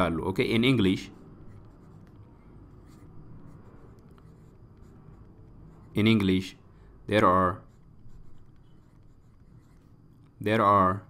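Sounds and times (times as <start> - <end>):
stylus scratching on tablet: 0.0 - 10.8.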